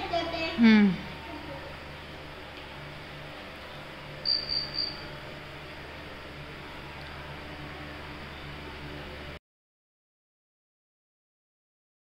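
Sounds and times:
low room hum: 0:00.0 - 0:09.4
short high-pitched chirps: 0:04.2 - 0:05.1.

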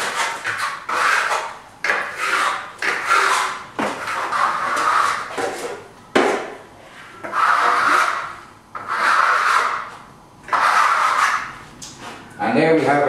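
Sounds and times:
trowel scraping plaster on wall: 0:00.0 - 0:12.2.

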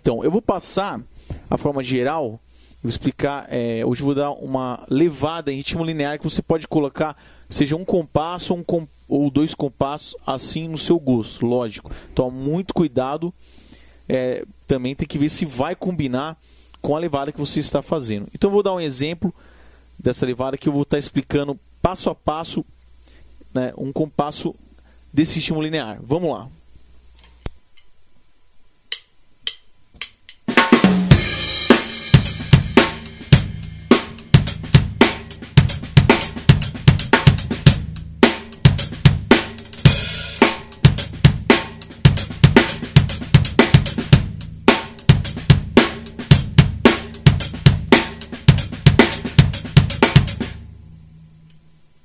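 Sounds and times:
drumstick clicks: 0:28.9 - 0:30.5
drum kit funk groove: 0:28.9 - 0:50.8
cymbal crash: 0:30.6 - 0:51.0.

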